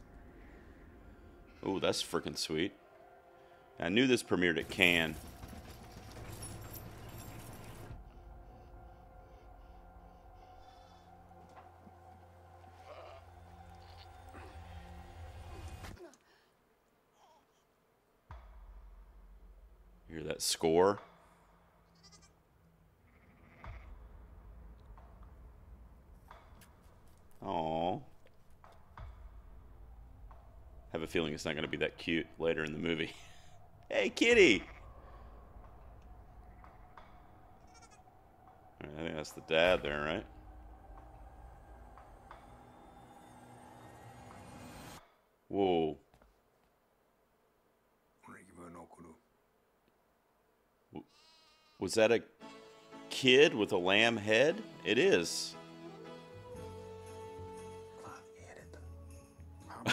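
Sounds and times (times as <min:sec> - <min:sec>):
low rumble: 0:00.0 - 0:01.6, 0:23.7 - 0:45.0
low hum: 0:00.0 - 0:16.0, 0:22.5 - 0:45.0
man speaking: 0:01.6 - 0:02.8, 0:03.8 - 0:05.2, 0:27.4 - 0:28.1, 0:30.9 - 0:34.8, 0:38.8 - 0:40.3, 0:45.5 - 0:46.0, 0:48.2 - 0:49.2, 0:53.1 - 0:55.6
faint sheep bleating: 0:12.8 - 0:14.5, 0:21.9 - 0:22.4, 0:23.0 - 0:23.9, 0:37.6 - 0:38.0, 0:50.9 - 0:51.9.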